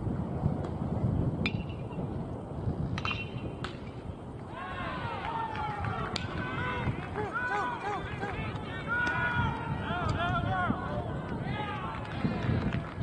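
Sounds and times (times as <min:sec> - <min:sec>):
baseball sharp ringing crack: 0:01.4 - 0:02.0, 0:02.9 - 0:04.0.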